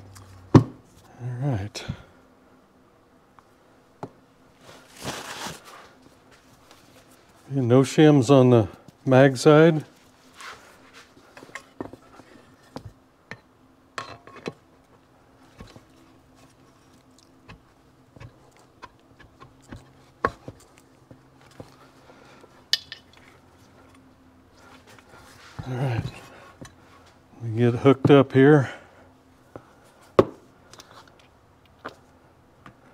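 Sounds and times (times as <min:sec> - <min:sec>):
faint steady hum: 0:00.0 - 0:32.9.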